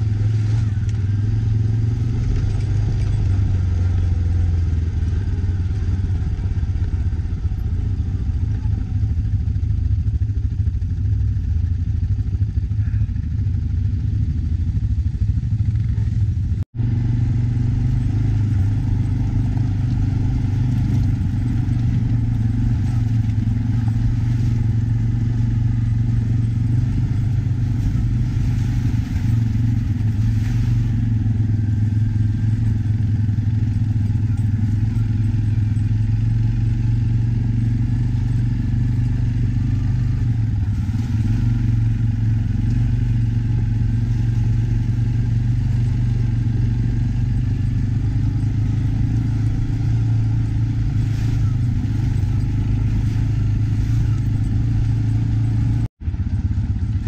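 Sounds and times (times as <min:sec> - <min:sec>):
quad bike engine running: 0:00.0 - 0:57.0.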